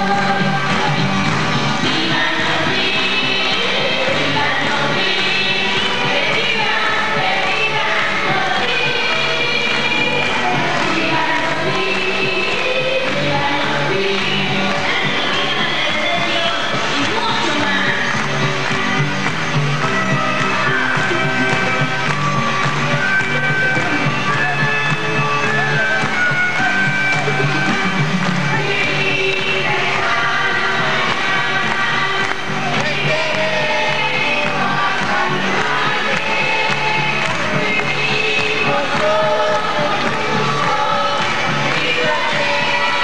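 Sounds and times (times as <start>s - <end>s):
live band music: 0.0s - 42.9s
person singing: 28.5s - 43.0s.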